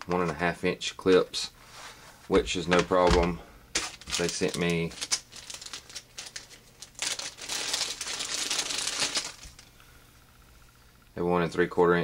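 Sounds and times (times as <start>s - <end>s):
packaging crinkling and rustling: 2.7s - 9.7s.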